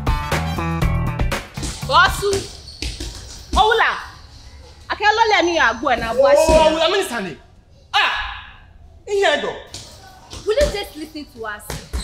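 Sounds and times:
background music with bass line: 0:00.0 - 0:01.6.

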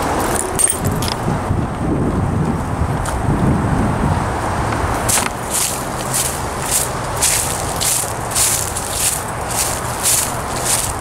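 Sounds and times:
steady outdoor rumble: 0:00.0 - 0:11.0.

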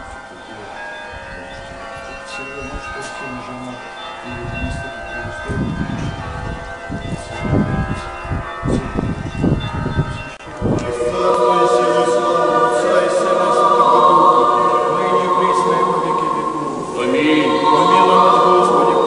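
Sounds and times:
church bells ringing: 0:00.0 - 0:19.0
wind rumbling on microphone: 0:01.1 - 0:12.4
choir singing a cappella: 0:10.5 - 0:19.0.

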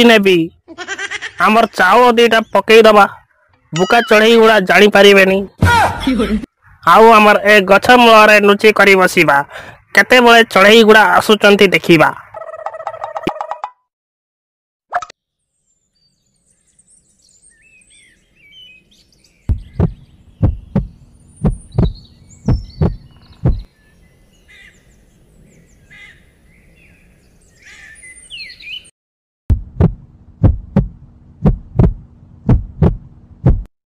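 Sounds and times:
birds chirping and twittering: 0:01.4 - 0:13.1, 0:15.2 - 0:28.9
deep heartbeat thumps: 0:19.5 - 0:23.7, 0:29.5 - 0:33.7.

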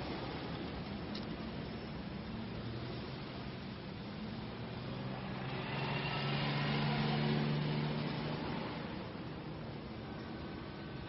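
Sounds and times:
road noise: 0:00.0 - 0:11.0
vehicle engine hum: 0:00.0 - 0:11.0.

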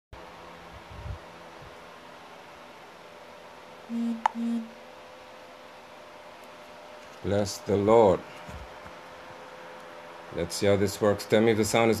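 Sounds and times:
low room hiss: 0:00.2 - 0:12.0
short steady low tones: 0:03.9 - 0:04.8.

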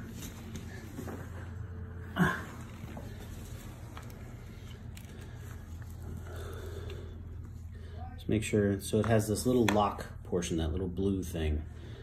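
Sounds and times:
steady low hum: 0:00.0 - 0:12.0
man grunting: 0:02.1 - 0:02.6.

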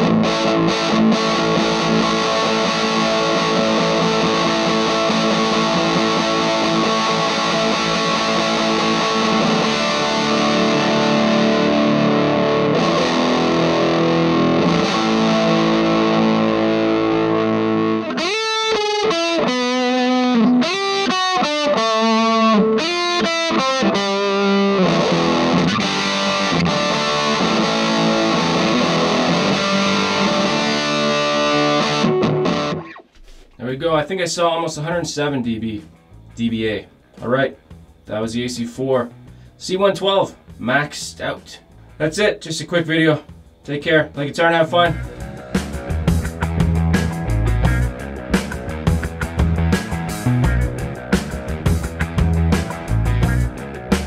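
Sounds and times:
distorted electric guitar: 0:00.0 - 0:33.8, 0:34.8 - 0:54.0.

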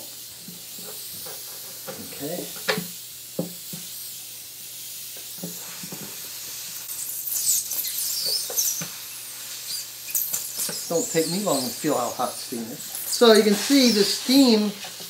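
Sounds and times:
steam hissing: 0:00.0 - 0:15.0.

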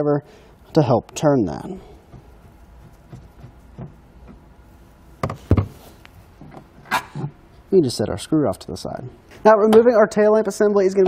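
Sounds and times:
sharp knocks: 0:02.1 - 0:04.4, 0:05.2 - 0:05.8.

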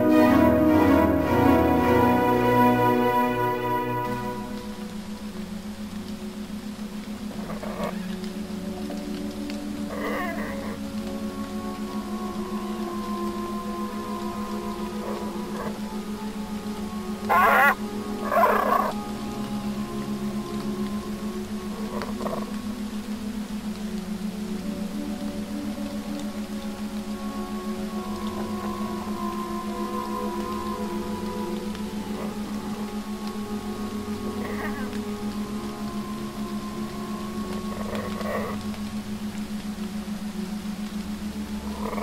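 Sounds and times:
pulsing low drone: 0:00.0 - 0:42.0
slow ambient music: 0:00.0 - 0:42.0
wavering animal calls: 0:07.3 - 0:09.2, 0:09.8 - 0:11.4, 0:13.8 - 0:16.0, 0:17.1 - 0:19.5, 0:21.6 - 0:22.6, 0:29.7 - 0:38.8, 0:41.6 - 0:42.0.

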